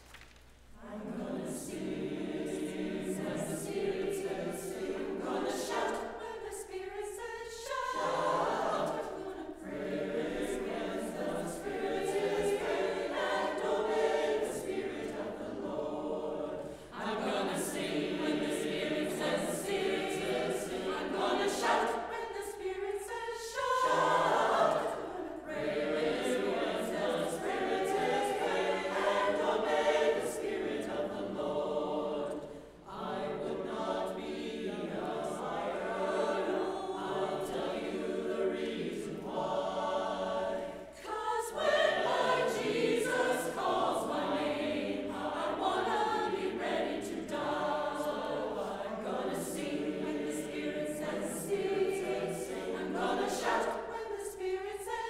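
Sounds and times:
church choir singing: 0:00.0 - 0:55.0.

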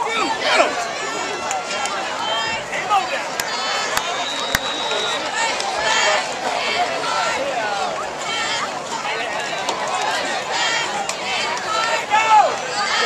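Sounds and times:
crowd shouting and cheering: 0:00.0 - 0:13.0
sharp claps: 0:03.4 - 0:04.8.

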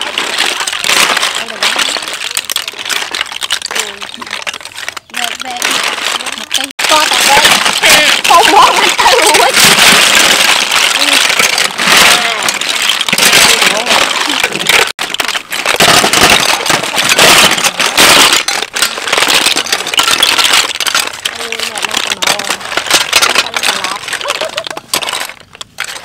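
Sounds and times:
snail shells clattering in metal basin: 0:00.0 - 0:26.0.

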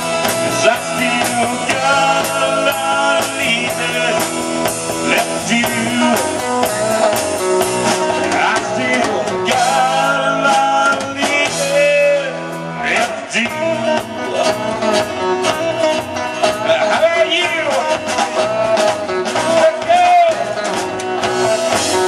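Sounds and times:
drum kit with cymbals: 0:00.0 - 0:22.0
man singing lead: 0:00.0 - 0:22.0
strummed guitars: 0:00.0 - 0:22.0.

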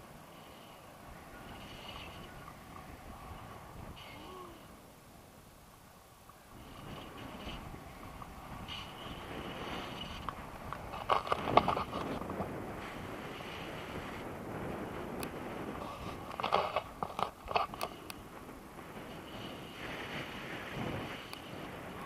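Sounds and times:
wind rushing over microphone: 0:00.0 - 0:05.7, 0:06.4 - 0:22.0
crackling wind buffeting: 0:00.0 - 0:22.0.

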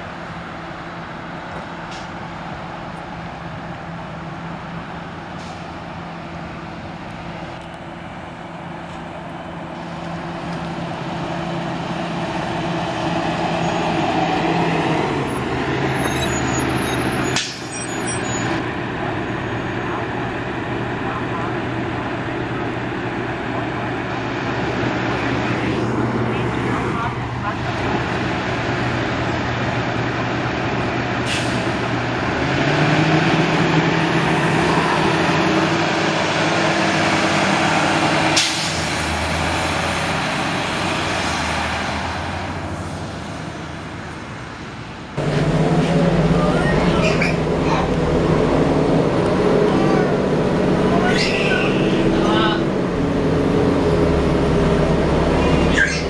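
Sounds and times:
diesel bus engine idling: 0:18.6 - 0:32.4, 0:42.8 - 0:56.0
air brake hiss: 0:31.2 - 0:31.7, 0:38.4 - 0:38.9.

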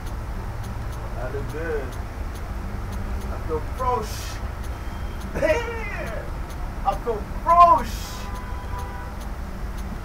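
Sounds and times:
faint regular ticks: 0:00.0 - 0:10.0
person's voice: 0:03.3 - 0:04.5, 0:05.3 - 0:08.3.

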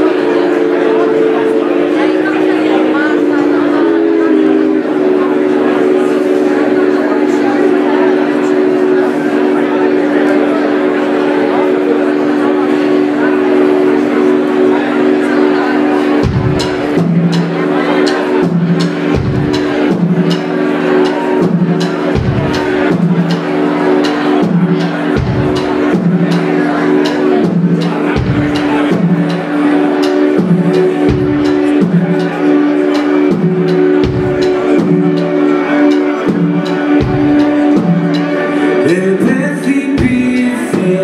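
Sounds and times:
audience chatter: 0:00.0 - 0:41.0
bass line: 0:00.0 - 0:41.0
rock band held chords: 0:00.0 - 0:41.0.

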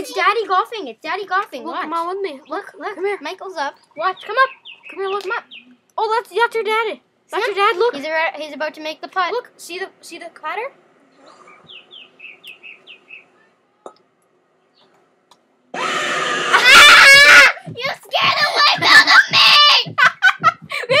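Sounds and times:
loud harsh scream from video: 0:15.7 - 0:19.9
boy screaming in fright: 0:15.8 - 0:17.8
shrieking and laughter: 0:15.8 - 0:21.0.

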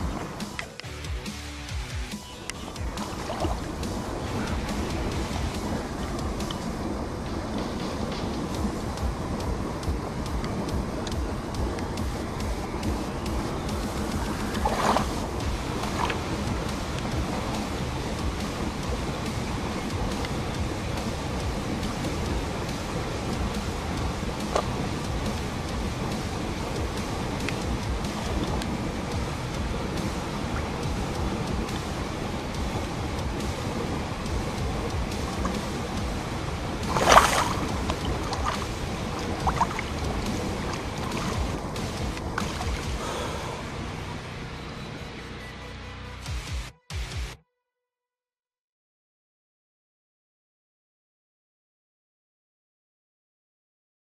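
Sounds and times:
wind buffeting microphone: 0:00.0 - 0:00.8, 0:02.0 - 0:44.3
river water rushing: 0:00.0 - 0:45.0.

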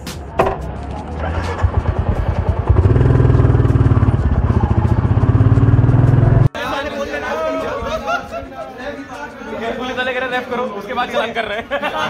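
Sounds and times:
motorcycle engine running: 0:00.9 - 0:06.5
voices: 0:06.4 - 0:12.0.

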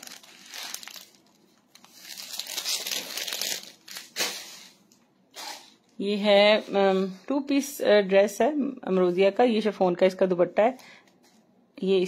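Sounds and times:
plastic bags crinkling: 0:00.0 - 0:04.9.

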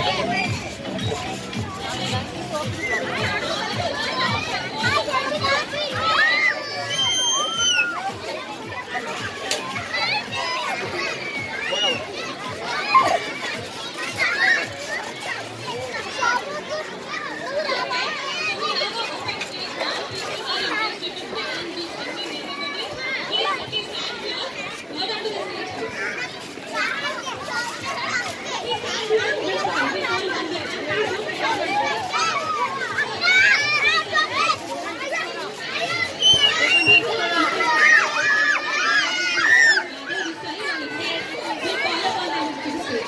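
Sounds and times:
children shouting and chattering: 0:00.0 - 0:43.0
child's high drawn-out cry: 0:06.2 - 0:08.0.

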